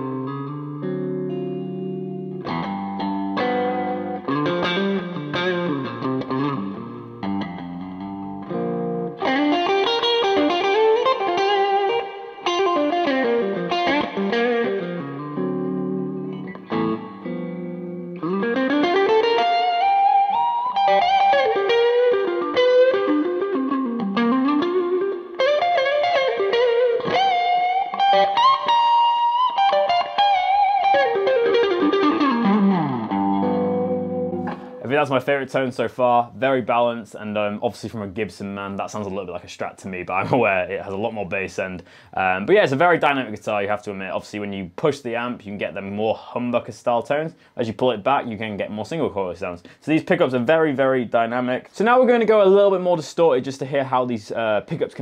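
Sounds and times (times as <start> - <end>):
overdriven electric guitar: 0.0 - 34.8.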